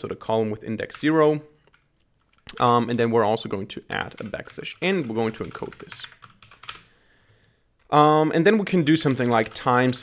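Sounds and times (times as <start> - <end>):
man speaking: 0.0 - 1.6, 2.5 - 6.2, 7.9 - 10.0
computer keyboard keystrokes: 4.0 - 6.9, 9.0 - 10.0.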